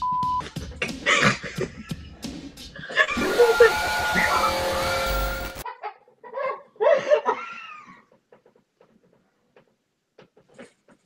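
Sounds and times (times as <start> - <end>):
harsh noisy jumpscare blast: 3.1 - 5.6.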